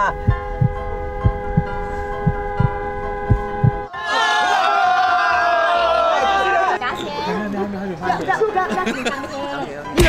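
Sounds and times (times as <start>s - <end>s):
heartbeat double thump: 0.0s - 3.9s
steady held chord: 0.0s - 3.9s.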